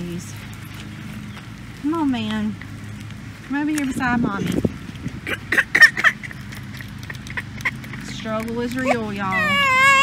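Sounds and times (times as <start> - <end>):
stroller rattling on grass: 0.0 - 10.0.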